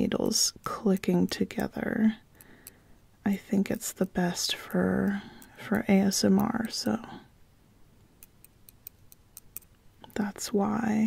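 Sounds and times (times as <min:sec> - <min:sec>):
metal knitting needles clicking: 0:00.0 - 0:02.8, 0:03.4 - 0:07.1, 0:08.2 - 0:10.2.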